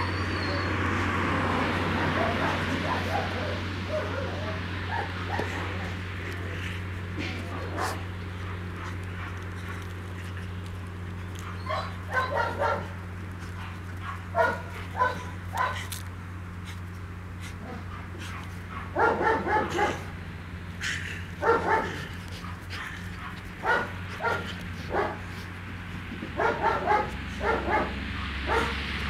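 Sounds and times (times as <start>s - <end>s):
dog whining: 0.0s - 0.8s
dog barking and yipping: 1.9s - 6.0s, 7.4s - 9.9s, 11.2s - 16.0s, 17.6s - 20.2s, 21.3s - 25.4s, 26.3s - 28.9s.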